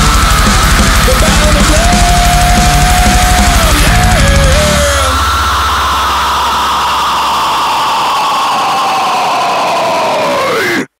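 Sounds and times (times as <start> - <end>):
distorted electric guitar tone: 0.0 - 8.8.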